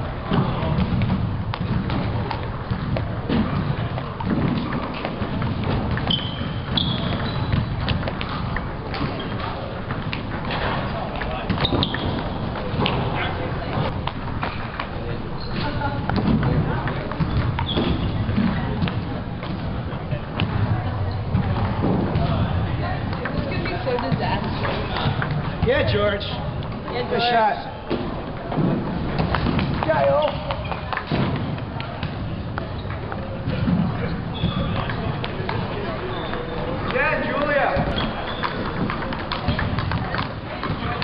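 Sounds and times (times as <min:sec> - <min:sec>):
murmur of voices: 0:00.0 - 0:41.0
people chatting: 0:08.2 - 0:14.0, 0:14.8 - 0:28.5, 0:29.8 - 0:41.0.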